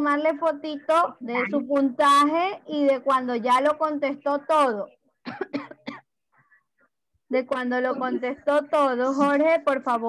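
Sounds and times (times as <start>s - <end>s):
person coughing: 5.3s - 6.1s, 7.9s - 8.4s.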